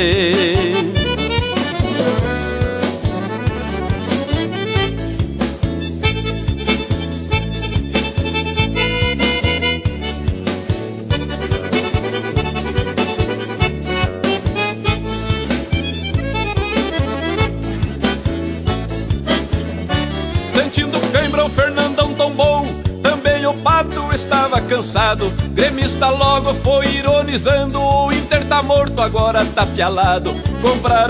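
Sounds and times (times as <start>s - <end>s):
accordion melody: 0.0s - 31.0s
bass line: 0.0s - 31.0s
steady drum beat: 0.0s - 31.0s.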